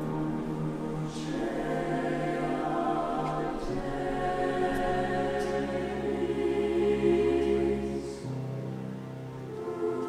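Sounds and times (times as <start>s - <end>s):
mixed choir singing: 0.0s - 8.7s, 9.5s - 10.0s.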